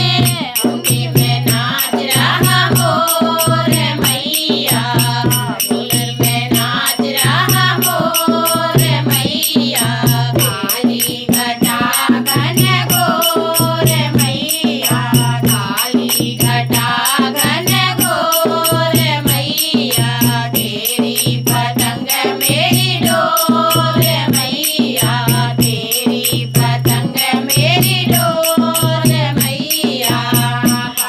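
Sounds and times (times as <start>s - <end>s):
hand drum beat: 0.0s - 31.0s
women singing together: 0.0s - 31.0s.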